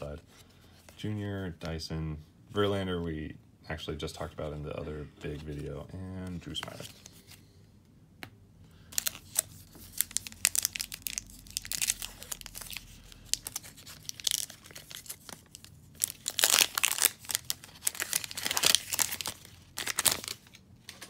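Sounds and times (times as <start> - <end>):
card pack wrapper tearing and crinkling: 8.9 - 21.0.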